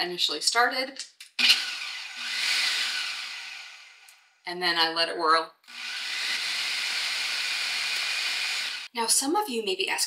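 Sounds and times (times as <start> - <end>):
food processor whirring: 1.4 - 4.2, 5.7 - 8.9.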